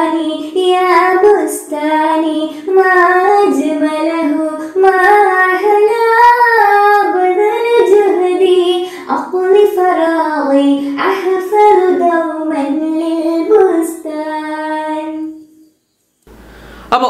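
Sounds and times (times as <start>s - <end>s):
girl singing: 0.0s - 15.5s.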